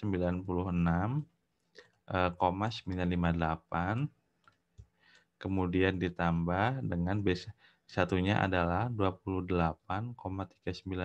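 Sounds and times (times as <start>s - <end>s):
man speaking: 0.0s - 1.4s, 2.1s - 4.2s, 5.4s - 11.0s.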